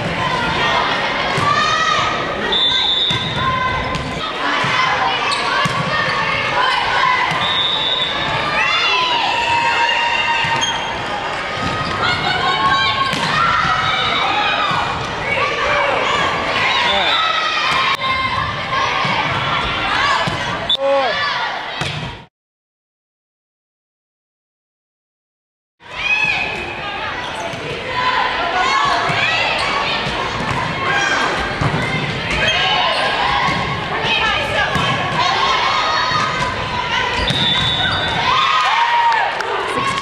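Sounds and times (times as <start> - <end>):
crowd shouting and cheering: 0.0 - 22.3, 25.8 - 40.0.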